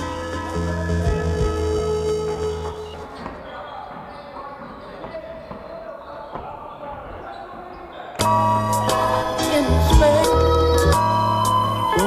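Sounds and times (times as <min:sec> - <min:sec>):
loud background music: 0:00.0 - 0:03.0, 0:08.2 - 0:12.0
players' voices: 0:02.6 - 0:11.0.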